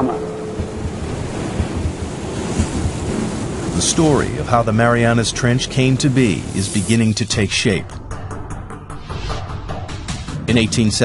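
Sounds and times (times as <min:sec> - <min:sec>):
wind: 0:00.0 - 0:07.4
ocean waves: 0:00.0 - 0:08.0.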